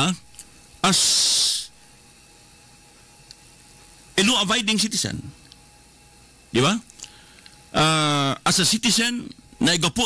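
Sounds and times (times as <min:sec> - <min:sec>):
man's drawn-out s hiss: 0:00.8 - 0:01.7.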